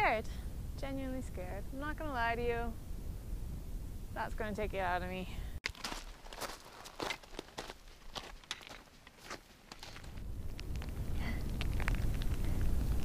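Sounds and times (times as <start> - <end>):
wind rumble on microphone: 0.0 - 5.6, 9.8 - 13.0.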